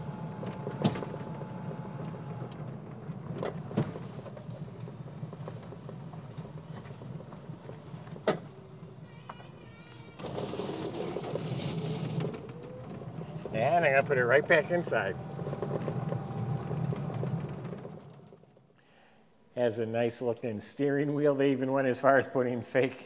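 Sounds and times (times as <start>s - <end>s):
electric cart driving on asphalt: 0.0s - 18.7s
outdoor background noise: 0.0s - 21.9s.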